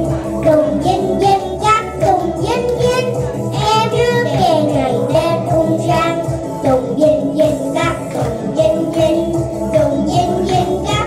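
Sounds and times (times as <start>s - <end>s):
girl singing into a microphone: 0.0s - 11.0s
instrumental accompaniment: 0.0s - 11.0s.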